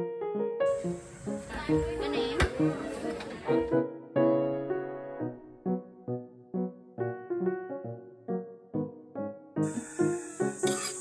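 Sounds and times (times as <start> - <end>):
keyboard background music: 0.0 - 11.0
busy market hiss: 0.7 - 3.5, 9.6 - 11.0
indistinct voices: 1.0 - 3.6.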